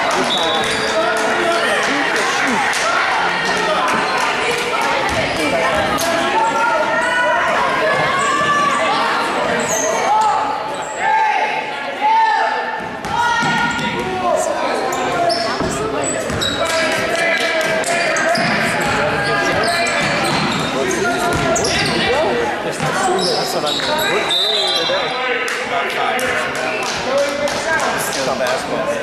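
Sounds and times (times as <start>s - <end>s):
echoing voices: 0.0s - 29.0s.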